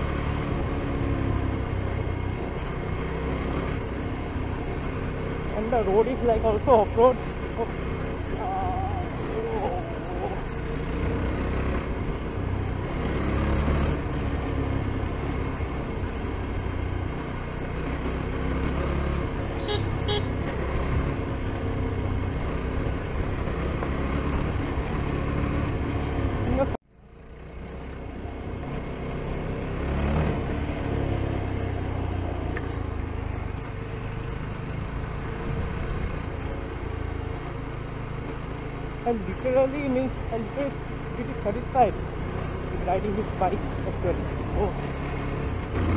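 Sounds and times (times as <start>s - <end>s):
motorcycle engine running: 0.0s - 45.9s.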